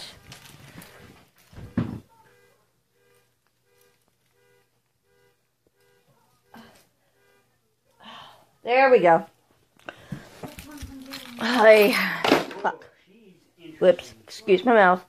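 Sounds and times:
faint electronic beeping: 0.0 - 8.7.

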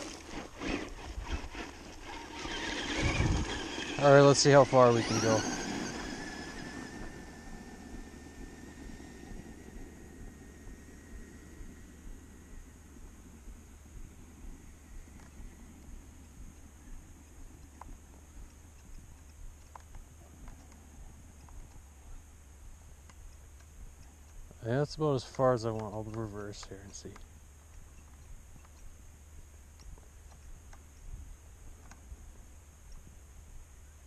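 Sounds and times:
steady low rumble: 0.0 - 34.0
toy truck electric motor whine: 0.3 - 12.0
faint ticks: 12.0 - 34.0.

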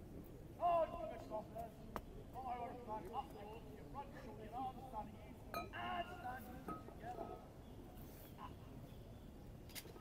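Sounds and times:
people talking: 0.6 - 7.5.

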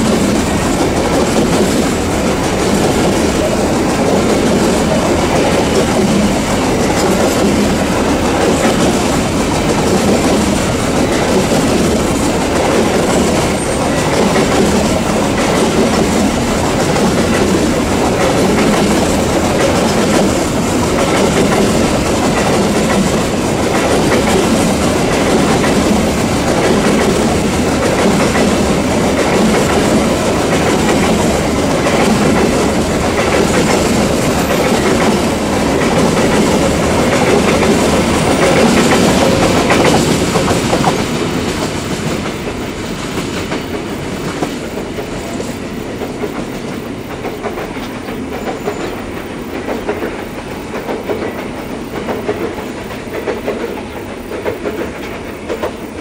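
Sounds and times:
train wagons rolling on rails: 0.0 - 56.0.

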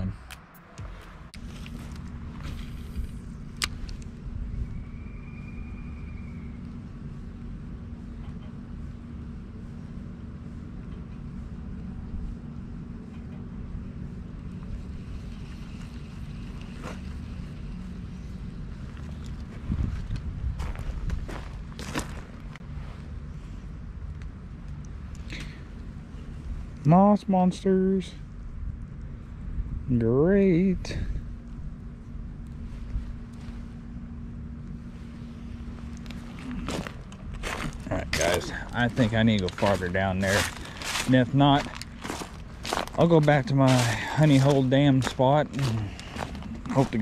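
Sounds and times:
faint steady hum: 0.0 - 47.0
low outdoor rumble: 0.0 - 47.0.

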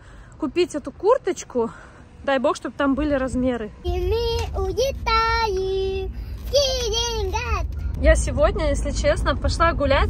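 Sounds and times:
car cabin rumble: 3.1 - 10.0.

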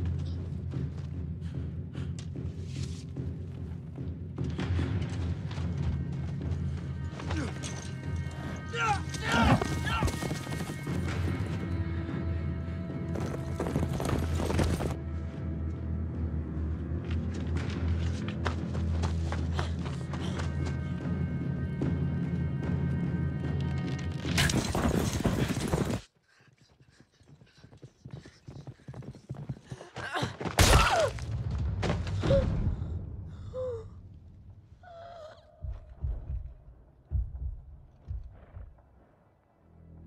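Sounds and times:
film score music: 0.0 - 28.9, 29.6 - 40.0
horse hooves clopping: 3.5 - 11.9, 12.8 - 15.0, 23.4 - 30.6
man shouting: 8.7 - 10.2.

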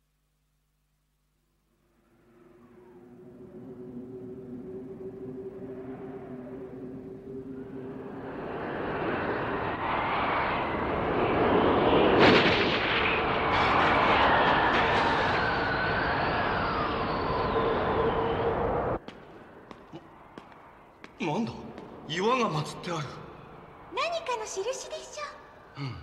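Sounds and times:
howling blizzard wind: 1.9 - 26.0
gliding whistling tone: 2.3 - 10.8, 13.4 - 19.0.

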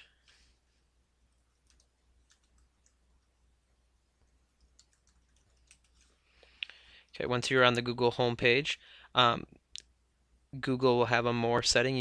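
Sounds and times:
faint keyboard typing clicks: 1.5 - 3.4, 4.2 - 6.2.

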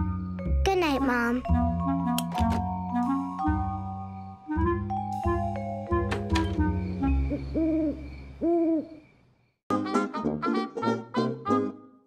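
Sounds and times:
music: 0.0 - 7.5, 9.7 - 12.0
owl hooting: 6.9 - 9.0
brassy music: 9.7 - 11.9.

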